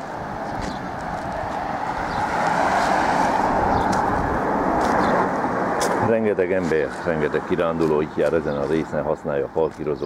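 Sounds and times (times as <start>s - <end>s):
car passing by: 0.6s - 7.9s.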